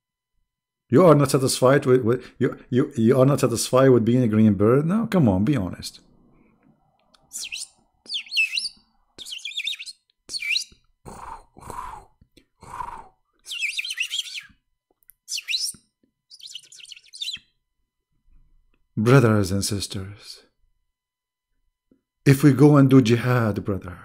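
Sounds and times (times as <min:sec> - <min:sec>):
birds chirping high notes: 0:07.2 - 0:11.4, 0:13.5 - 0:14.5, 0:15.3 - 0:17.4
lower short bird calls: 0:07.2 - 0:14.6, 0:15.3 - 0:17.4.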